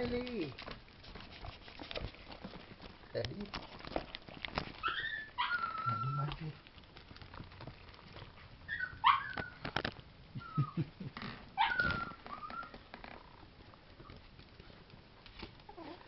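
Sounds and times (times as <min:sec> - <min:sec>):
paws clicking on wooden floor: 0:00.0 - 0:16.0
puppies yipping: 0:04.7 - 0:06.4, 0:08.4 - 0:09.7, 0:10.4 - 0:10.9, 0:11.5 - 0:12.9.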